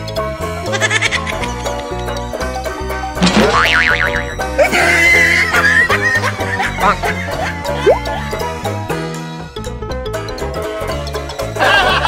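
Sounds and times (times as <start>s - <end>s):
upbeat comedy music: 0.5s - 2.3s, 3.0s - 9.0s, 11.3s - 12.0s
wobbly cartoon sound effect: 7.8s - 8.2s.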